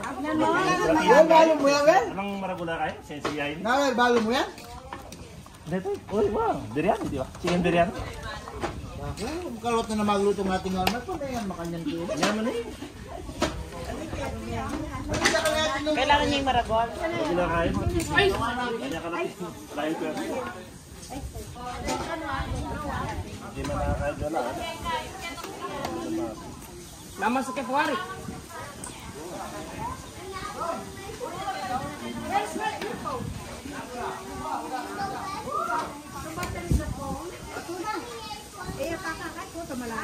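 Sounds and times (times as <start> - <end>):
voices chattering: 0.0 - 40.0
people talking: 4.2 - 40.0.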